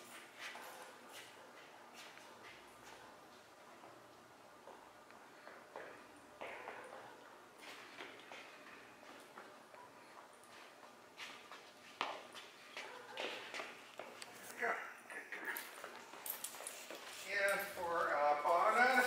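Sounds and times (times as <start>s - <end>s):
footsteps on rubber matting: 4.6s - 14.6s, 15.7s - 19.0s.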